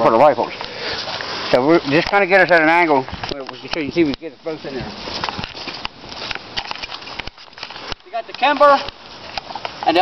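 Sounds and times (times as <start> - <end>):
camera handling rustle: 5.1 - 9.9.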